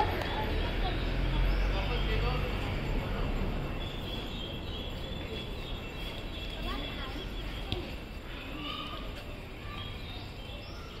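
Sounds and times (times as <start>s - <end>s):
outdoor background noise: 0.0s - 11.0s
bird chirps: 0.2s - 11.0s.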